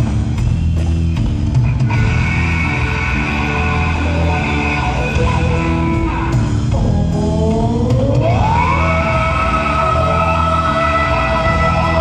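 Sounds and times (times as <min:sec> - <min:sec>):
live rock band jamming: 0:00.0 - 0:12.0.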